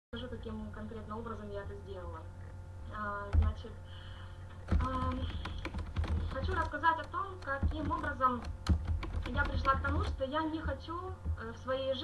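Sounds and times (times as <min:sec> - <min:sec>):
computer keyboard typing: 0:04.6 - 0:11.5.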